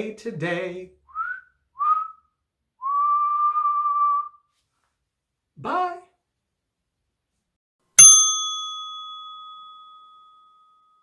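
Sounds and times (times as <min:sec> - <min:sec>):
man whistling: 0:01.0 - 0:04.5.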